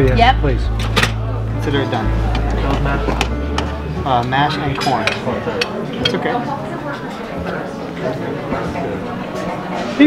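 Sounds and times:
music: 0:00.0 - 0:10.0
utensil clinking on metal pans: 0:04.2 - 0:06.3.

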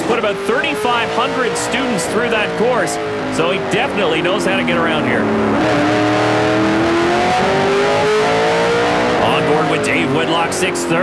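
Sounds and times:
racing car engine accelerating: 0:00.0 - 0:11.0.

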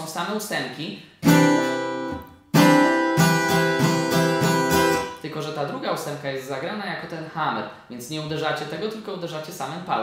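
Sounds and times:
acoustic guitar strumming: 0:01.2 - 0:05.2.

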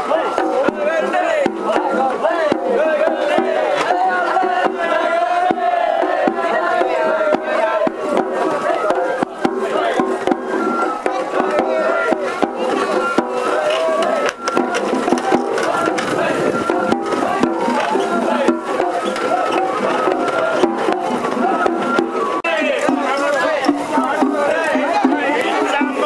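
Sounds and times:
crowd voices: 0:00.0 - 0:26.0
taiko drums: 0:00.0 - 0:26.0.

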